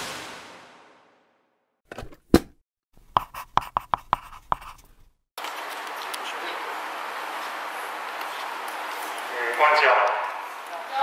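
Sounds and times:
scratchy pen strokes: 0:03.1 - 0:05.1.

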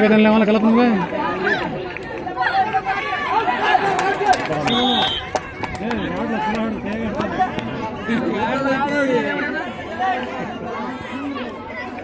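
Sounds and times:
crowd chattering: 0:00.0 - 0:12.0
short high whistle: 0:04.7 - 0:05.3.

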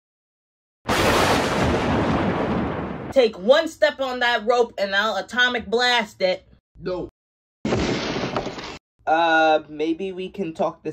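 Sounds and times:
loud booming effect: 0:00.9 - 0:03.1, 0:07.7 - 0:08.5.

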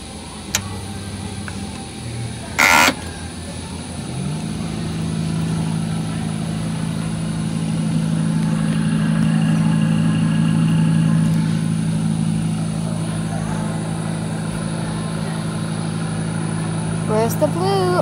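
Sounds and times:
turntable motor spinning up: 0:00.5 - 0:18.0.

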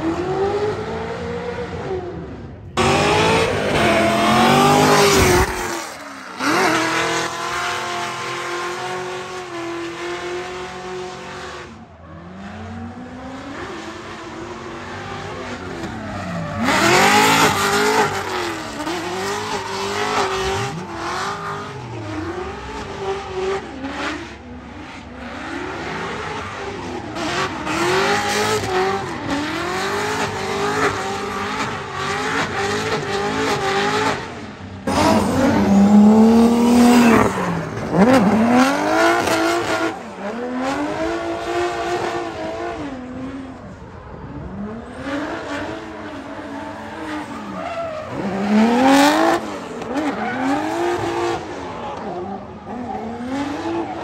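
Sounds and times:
car engine revving hard: 0:02.7 - 0:11.7, 0:12.5 - 0:24.4, 0:25.2 - 0:43.4, 0:44.7 - 0:54.0.

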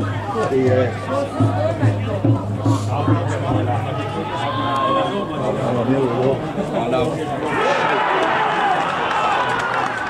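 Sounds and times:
voices shouting and cheering: 0:00.0 - 0:10.0.

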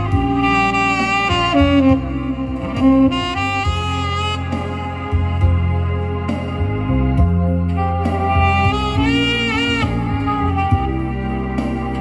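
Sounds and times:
saxophone slow melody: 0:00.0 - 0:12.0
steady bass accompaniment: 0:00.0 - 0:12.0.

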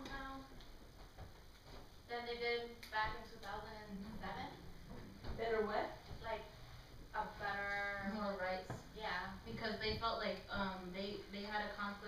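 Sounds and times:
person speaking: 0:02.1 - 0:06.6.

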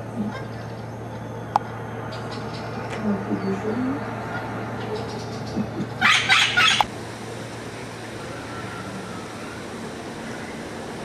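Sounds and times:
parrot squawking: 0:04.3 - 0:06.9.

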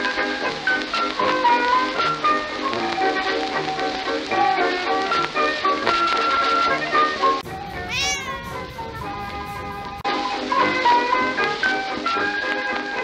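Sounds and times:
cat meowing: 0:07.4 - 0:10.0.

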